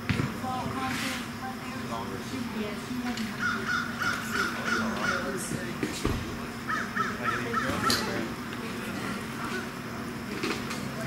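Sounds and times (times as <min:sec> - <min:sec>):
bird calling harsh notes: 0:03.3 - 0:05.4, 0:06.6 - 0:08.1.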